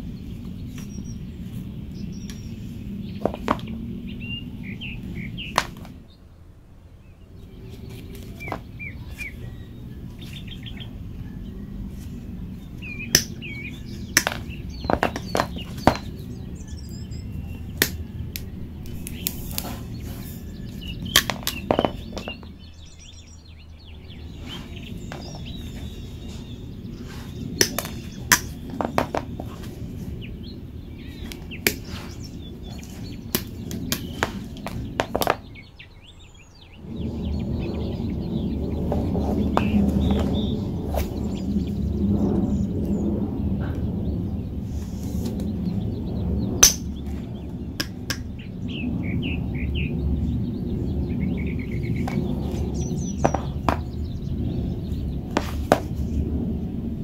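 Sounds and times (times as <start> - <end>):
birds chirping: 0.0 - 57.0.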